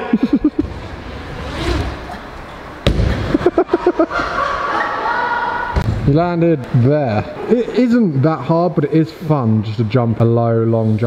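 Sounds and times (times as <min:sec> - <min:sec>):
bike landing thud: 0:02.8 - 0:03.5
onlookers shouting and whooping: 0:04.1 - 0:05.8.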